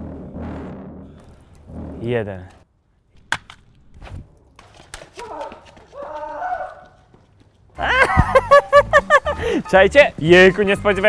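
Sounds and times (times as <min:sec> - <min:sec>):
sharp crack: 0:02.5 - 0:05.8.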